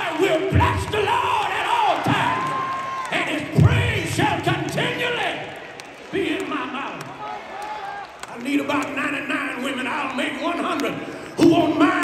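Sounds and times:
congregation shouting and whooping: 0.0s - 8.3s
hand claps: 5.7s - 9.0s.

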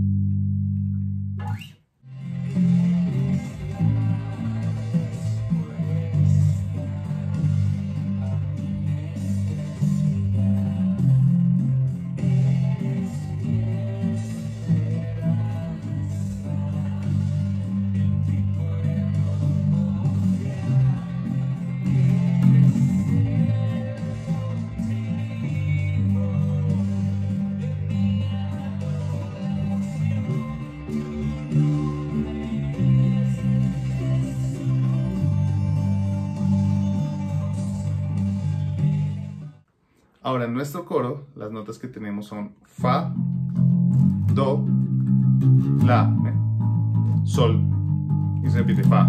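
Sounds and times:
electric bass guitar notes: 0.0s - 39.6s, 42.7s - 49.0s
recorded worship song: 2.2s - 43.1s.

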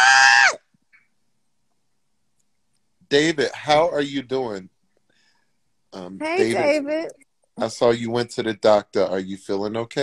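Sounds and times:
woman calling a name loudly: 6.2s - 7.2s.

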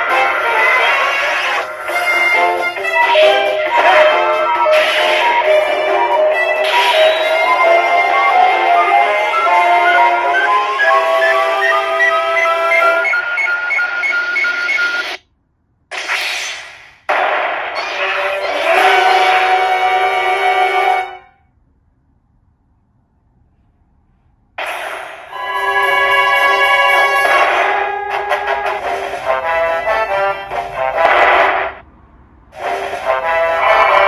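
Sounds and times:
electronic machine music: 0.0s - 15.2s
electronic burst: 15.9s - 19.7s.

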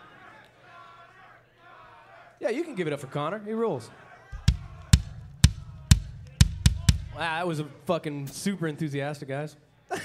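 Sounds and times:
heavy drum kit hits: 4.4s - 7.4s.

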